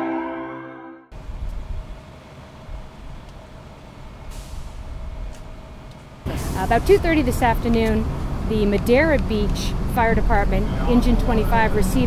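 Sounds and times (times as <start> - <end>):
vehicle engines idling: 1.2 - 12.0
short hiss: 4.3 - 4.8.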